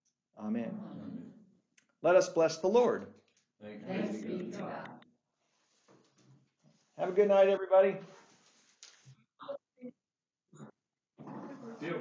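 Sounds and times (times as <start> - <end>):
person speaking: 3.7 - 5.0, 7.0 - 8.2.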